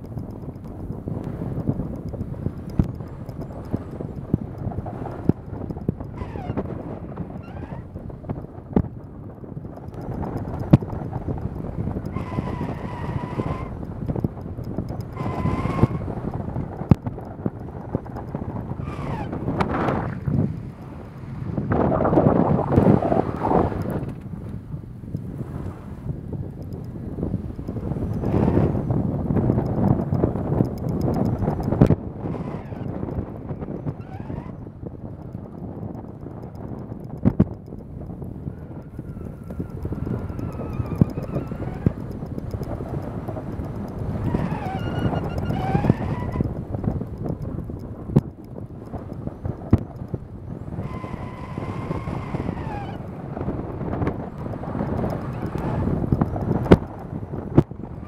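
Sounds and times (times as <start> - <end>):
scattered clicks: 0.0 - 57.8
tyres rumbling on snow and ice: 0.0 - 58.0
wind buffeting microphone: 0.0 - 58.0.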